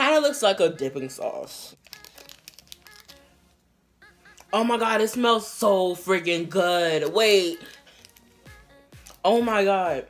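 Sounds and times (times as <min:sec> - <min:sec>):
plastic candy wrapper crinkling: 0:01.8 - 0:03.6, 0:07.0 - 0:08.4, 0:09.0 - 0:09.3.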